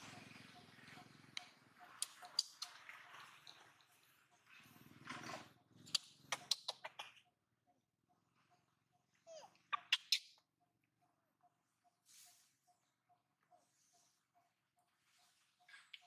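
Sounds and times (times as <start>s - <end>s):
baby monkey squeaking: 9.3s - 10.4s.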